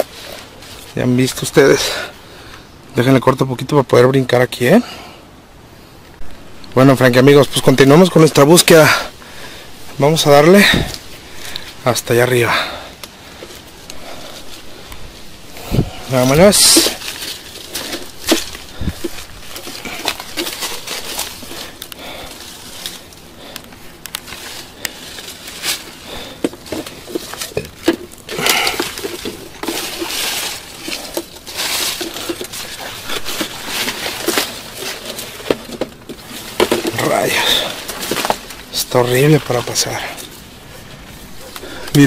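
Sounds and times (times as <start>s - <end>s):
footsteps through brush: 0.0s - 2.7s, 6.1s - 42.0s
leaves rustling: 0.0s - 42.0s
twigs cracking: 6.0s - 42.0s.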